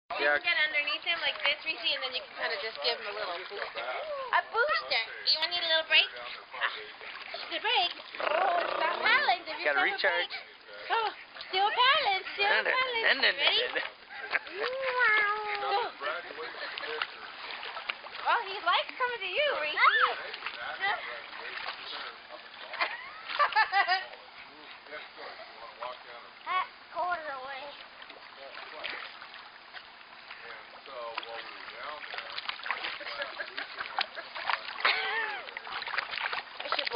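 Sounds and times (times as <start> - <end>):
pool water splashing: 0.1 - 36.9
people's voices: 0.2 - 17.4
long vocal cry: 8.2 - 9.1.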